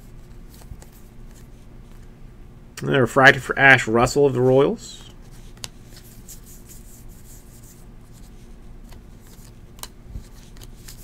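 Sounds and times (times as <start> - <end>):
cards rustling: 0.1 - 2.1, 5.0 - 11.0
cards clicking: 8.8 - 11.0.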